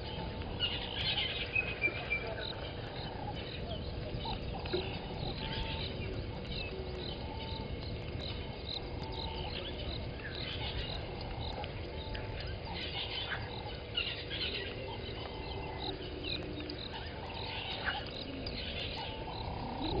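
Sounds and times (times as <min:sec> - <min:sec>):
steady low rumble: 0:00.0 - 0:20.0
birds chirping and calling: 0:00.1 - 0:20.0.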